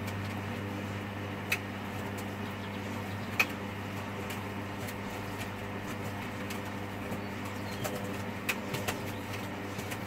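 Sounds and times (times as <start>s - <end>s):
washing machine spin hum: 0.0s - 10.0s.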